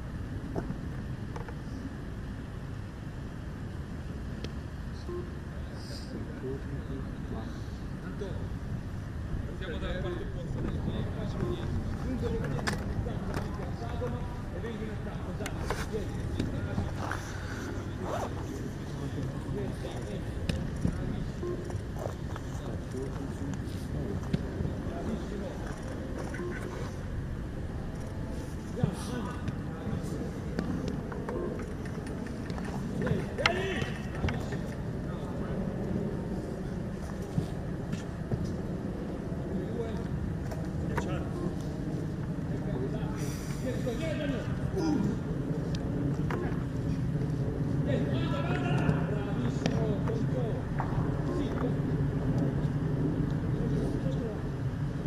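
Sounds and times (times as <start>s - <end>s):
low outdoor rumble: 0.0s - 55.0s
faint voices: 4.9s - 54.8s.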